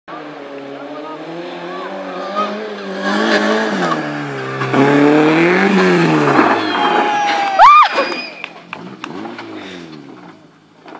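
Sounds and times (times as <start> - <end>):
race car engine climbing: 0.1 - 10.9.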